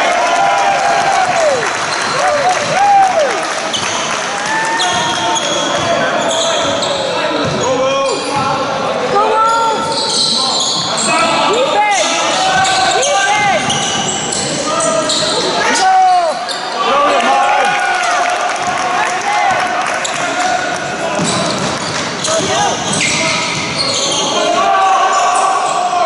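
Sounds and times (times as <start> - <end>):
trainers squeaking on court: 4.8 - 17.1, 20.0 - 25.9
voices calling out: 4.8 - 26.0
basketball bouncing: 7.4 - 7.7, 19.5 - 23.8.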